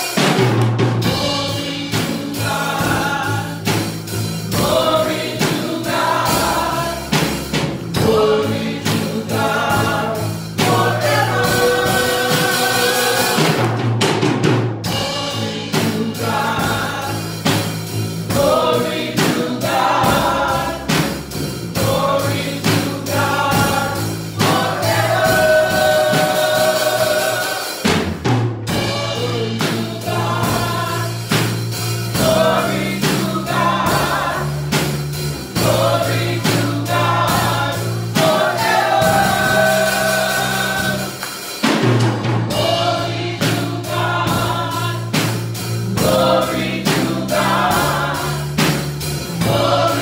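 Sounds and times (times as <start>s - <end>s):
gospel choir singing: 0.0s - 50.0s
steady beat: 0.0s - 50.0s
electric bass guitar: 0.8s - 13.7s, 42.0s - 50.0s.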